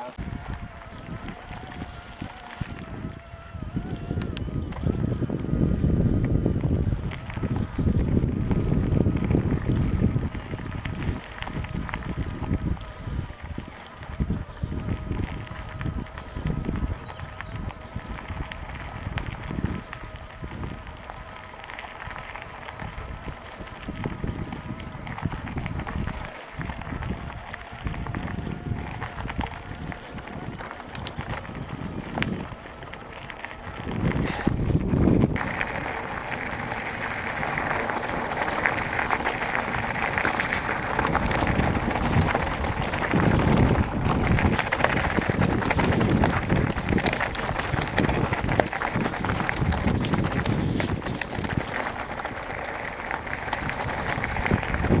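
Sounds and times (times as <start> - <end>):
bike tyres on gravel: 0.0 - 55.0
wind buffeting microphone: 0.0 - 55.0
bike frame rattle: 25.1 - 55.0.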